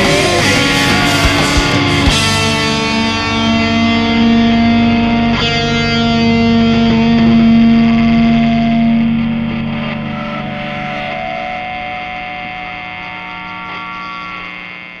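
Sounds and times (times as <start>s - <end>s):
backing track music: 0.0s - 13.7s
distorted electric guitar chords: 0.0s - 15.0s.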